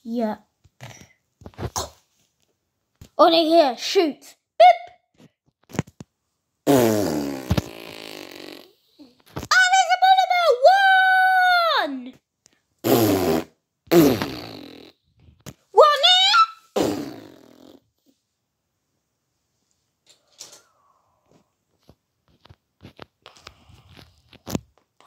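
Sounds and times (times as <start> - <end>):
fart sounds: 6.6 - 9.4, 12.8 - 15.5, 16.7 - 18.0
child squealing: 15.8 - 16.7.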